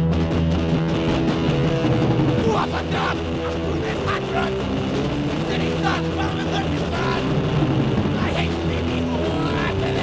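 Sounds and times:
distorted electric guitar: 0:00.0 - 0:10.0
hardcore punk band playing: 0:00.0 - 0:10.0.

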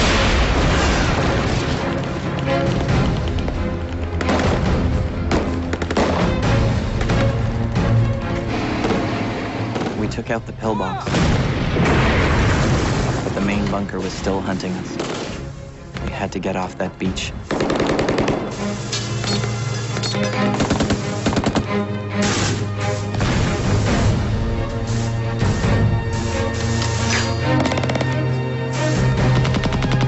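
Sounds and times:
explosions booming: 0:00.0 - 0:01.9, 0:11.0 - 0:13.8, 0:23.2 - 0:24.3
dramatic music score: 0:00.0 - 0:30.0
gunfire: 0:04.2 - 0:07.4, 0:08.6 - 0:10.2, 0:17.5 - 0:18.6, 0:27.4 - 0:28.3, 0:29.2 - 0:30.0.

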